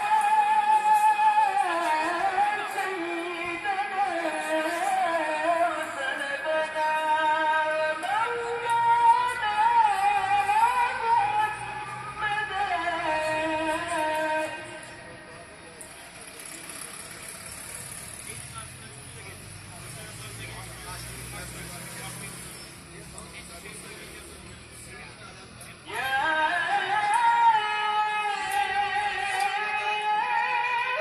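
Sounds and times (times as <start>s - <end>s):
muezzin chanting over loudspeakers: 0.0s - 16.4s, 23.7s - 31.0s
car passing: 8.0s - 26.1s.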